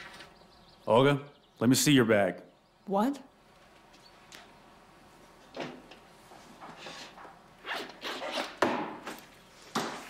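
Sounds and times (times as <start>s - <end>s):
zipper pulled open: 7.6s - 8.6s.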